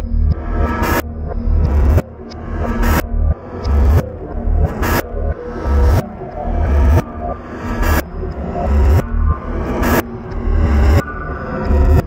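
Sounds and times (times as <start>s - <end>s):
glitchy electronic music: 0.0s - 12.0s.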